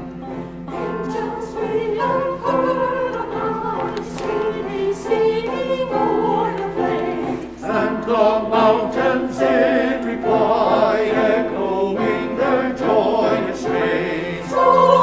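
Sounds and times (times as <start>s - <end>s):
choir singing a carol: 0.0s - 15.0s.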